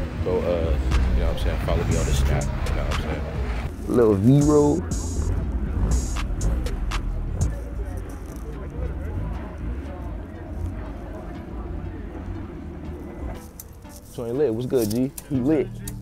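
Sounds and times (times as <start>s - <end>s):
steady low rumble: 0.0s - 13.4s
indistinct voices: 0.0s - 16.0s.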